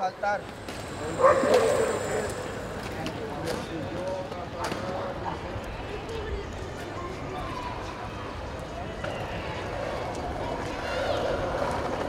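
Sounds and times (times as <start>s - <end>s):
voices of people: 0.0s - 12.0s.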